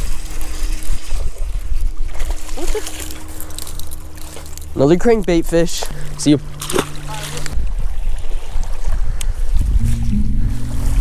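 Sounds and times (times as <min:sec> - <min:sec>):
wind buffeting microphone: 0:07.4 - 0:11.0.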